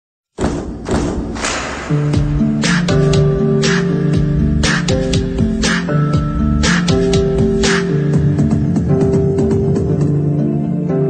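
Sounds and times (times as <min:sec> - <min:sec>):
deep thuds: 0:00.4 - 0:02.5
music: 0:00.4 - 0:11.0.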